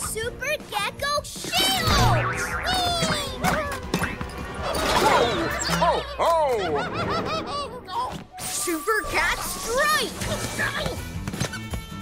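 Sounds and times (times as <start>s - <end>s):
background music: 0.0s - 12.0s
cartoon boing effects: 1.9s - 4.3s.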